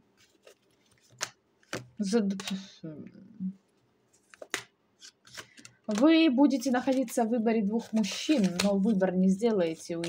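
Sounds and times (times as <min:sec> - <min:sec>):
woman speaking: 0:02.0 - 0:03.6, 0:05.9 - 0:10.0
cards flicking and sliding: 0:07.9 - 0:08.9.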